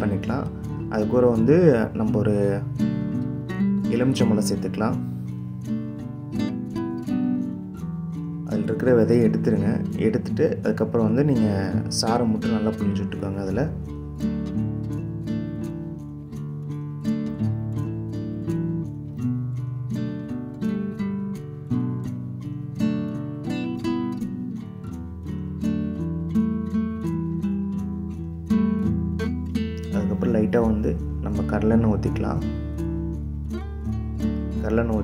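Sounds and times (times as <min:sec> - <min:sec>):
acoustic guitar tune: 0:00.0 - 0:35.0.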